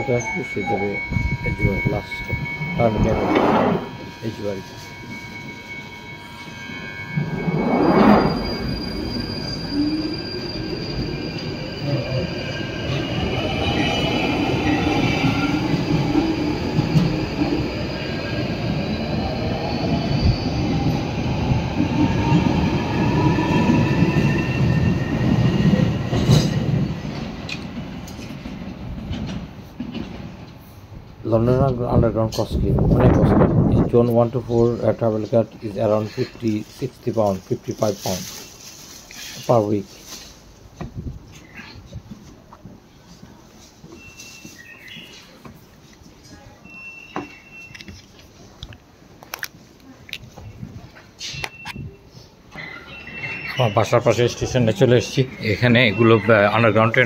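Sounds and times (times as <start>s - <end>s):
train wheels rumbling on rails: 0.0s - 42.8s.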